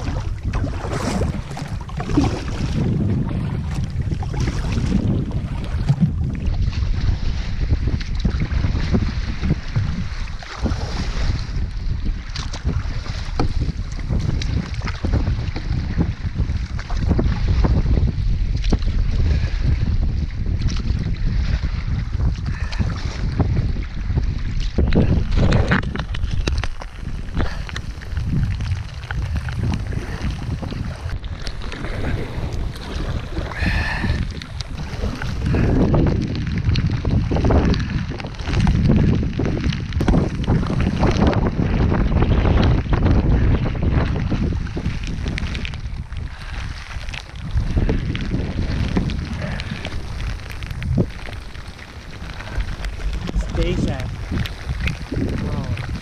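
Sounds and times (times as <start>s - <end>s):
water splashing around canoe: 0.0s - 56.0s
wind buffeting microphone: 0.0s - 56.0s.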